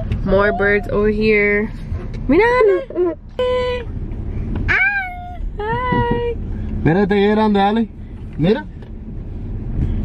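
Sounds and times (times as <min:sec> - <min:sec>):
car cabin hum: 0:00.0 - 0:10.0
toddler squealing: 0:04.7 - 0:05.4.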